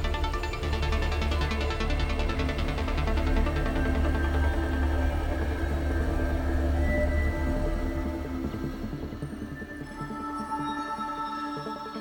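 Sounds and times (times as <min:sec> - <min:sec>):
deep synth bass drone: 0:00.0 - 0:09.5.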